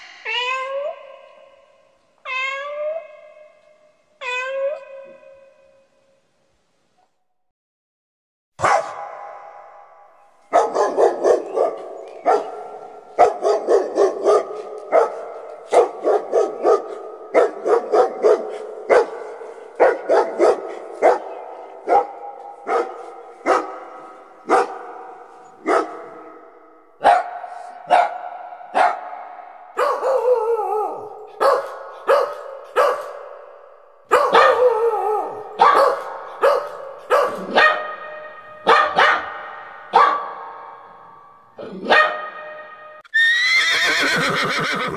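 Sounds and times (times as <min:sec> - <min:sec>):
puppy yelps: 0:04.2 - 0:05.8, 0:10.5 - 0:23.8, 0:34.1 - 0:40.3, 0:41.7 - 0:44.9
puppies barking and yipping: 0:10.5 - 0:24.9.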